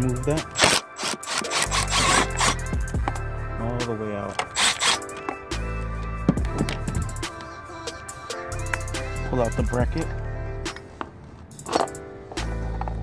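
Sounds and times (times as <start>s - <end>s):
music with sung vocals: 0.0s - 13.0s
ratchet wrench rasping: 0.5s - 2.9s, 4.3s - 5.2s.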